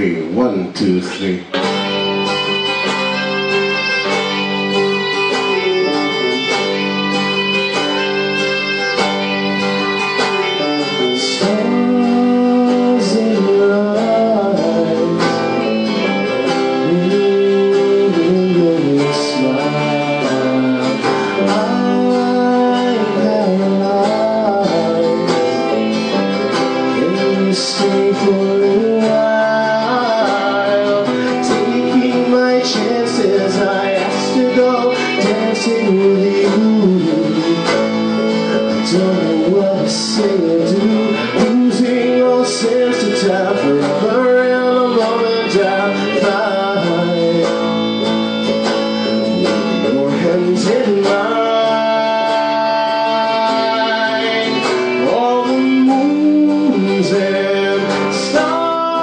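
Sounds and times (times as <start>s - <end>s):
strummed acoustic guitar: 0.0s - 59.0s
bowed violin melody: 1.6s - 12.0s.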